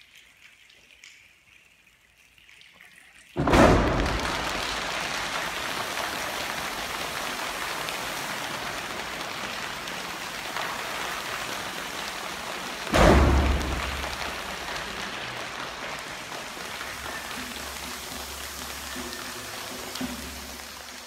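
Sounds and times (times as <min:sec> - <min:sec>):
choir making rain patter: 0:00.0 - 0:21.0
loud low thump: 0:03.4 - 0:04.4, 0:12.9 - 0:14.2.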